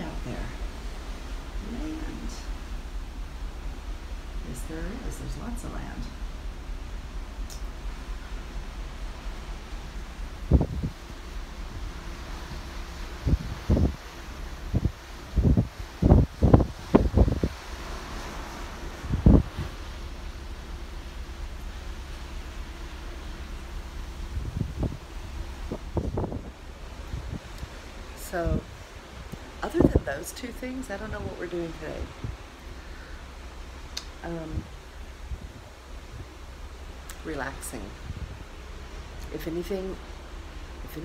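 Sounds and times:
wind buffeting microphone: 0.0s - 32.6s, 33.3s - 41.0s
low rumble and hiss: 0.0s - 41.0s.

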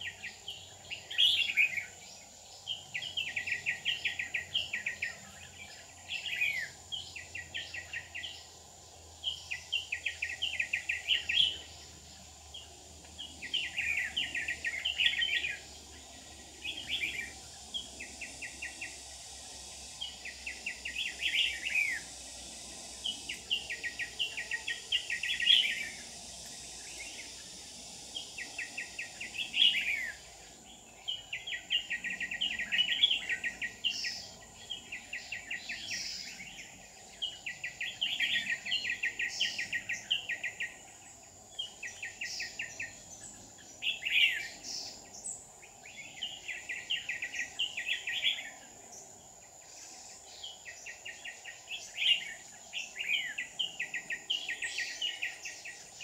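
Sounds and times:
bird singing: 0.0s - 56.0s
high-pitched hiss: 0.0s - 56.0s.

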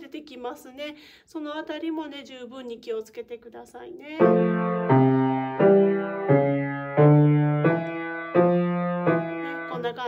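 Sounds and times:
piano notes: 4.2s - 10.0s.

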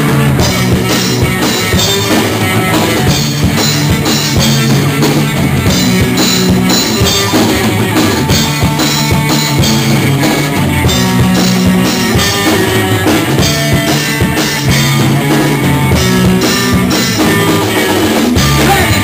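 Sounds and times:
drum kit beat: 0.0s - 19.0s
electric guitars: 0.0s - 19.0s.

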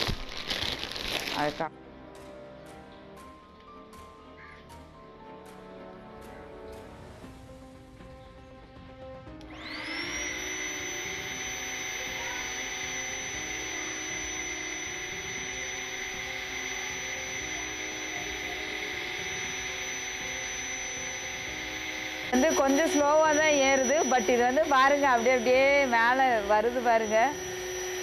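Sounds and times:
electric air pump whining: 0.0s - 1.7s, 9.3s - 28.0s.

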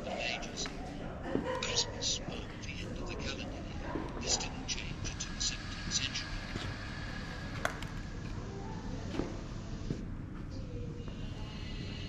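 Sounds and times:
person whispering: 1.6s - 7.3s.

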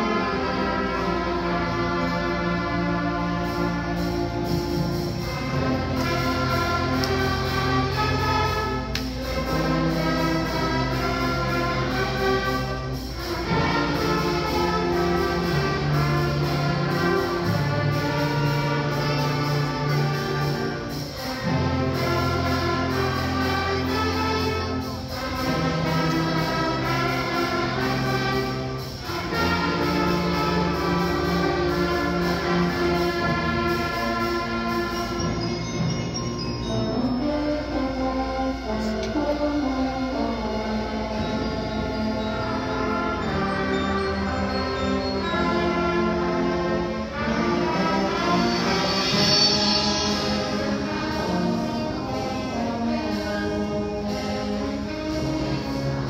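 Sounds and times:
orchestra and band sustained chords: 0.0s - 56.0s.

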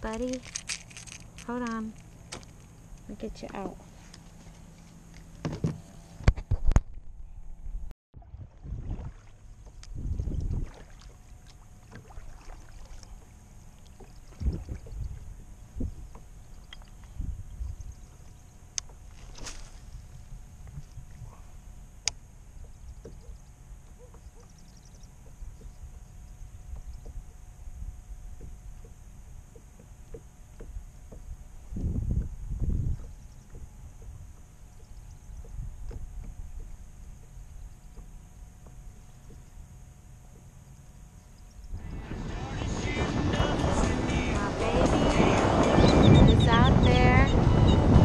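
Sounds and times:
water and hull rumble: 0.0s - 48.0s.

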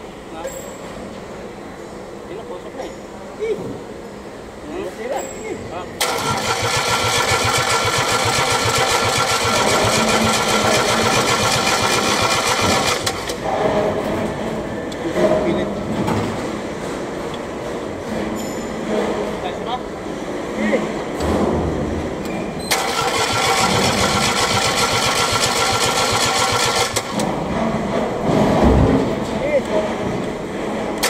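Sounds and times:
diesel engine starter cranking: 6.0s - 13.4s, 22.6s - 27.2s.

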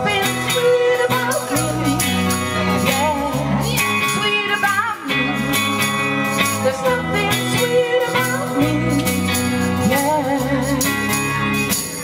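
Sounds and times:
bass line: 0.0s - 12.0s
drums: 0.0s - 12.0s
jingling percussion: 5.4s - 12.0s.

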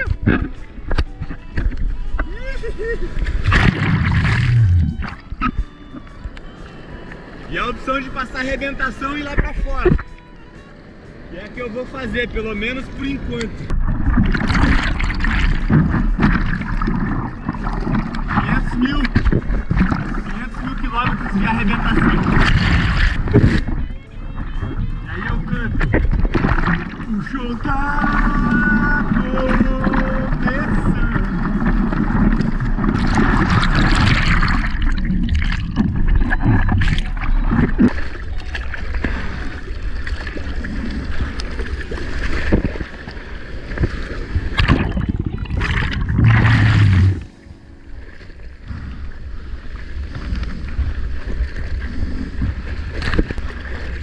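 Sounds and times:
muffled underwater gurgling: 0.0s - 6.1s, 13.2s - 42.9s, 43.7s - 47.8s
churning surf and splashing water: 0.0s - 54.0s.

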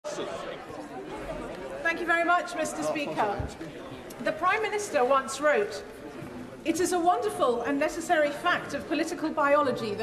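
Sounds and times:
crowd chattering in large hall: 0.0s - 10.0s
woman speaking: 1.9s - 3.5s, 4.2s - 5.8s, 6.7s - 10.0s.

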